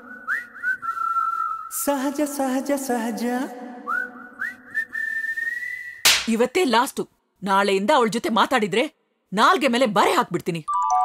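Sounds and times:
whistled melody: 0:00.0 - 0:01.9, 0:03.9 - 0:06.0.

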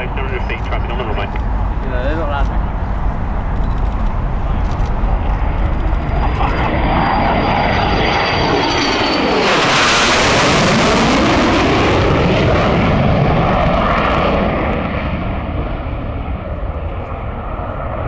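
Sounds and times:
jet flying overhead: 0:00.0 - 0:18.0.

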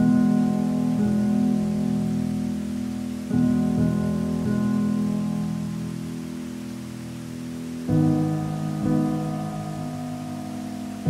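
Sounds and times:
rushing water: 0:00.0 - 0:11.0
slow piano: 0:00.0 - 0:11.0.

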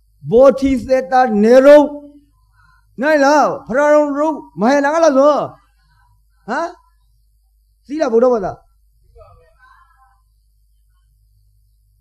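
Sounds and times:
low steady hum: 0:00.0 - 0:12.0
soft voice murmuring: 0:09.1 - 0:10.3.

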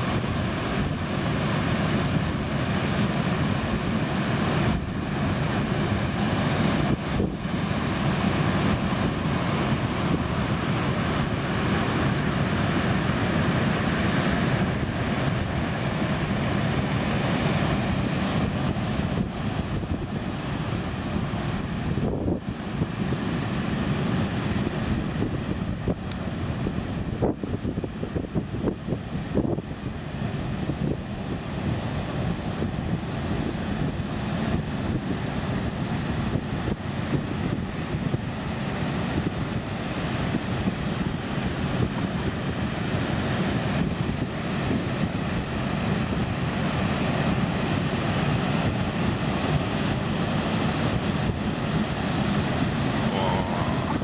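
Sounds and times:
waves crashing on rocks: 0:00.0 - 0:54.0
wind buffeting microphone: 0:00.0 - 0:54.0.

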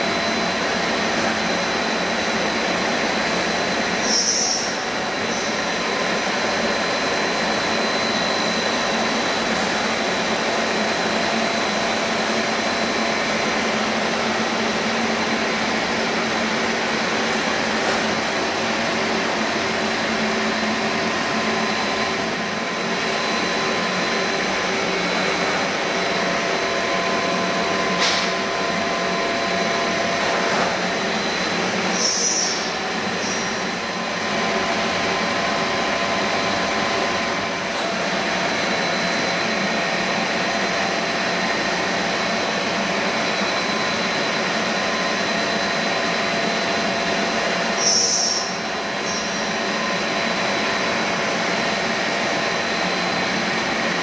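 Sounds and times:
extrusion machinery humming: 0:00.0 - 0:54.0.

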